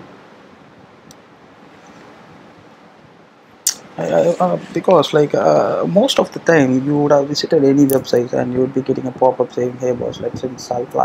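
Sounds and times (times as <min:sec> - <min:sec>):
faint microphone hiss: 0:00.0 - 0:11.0.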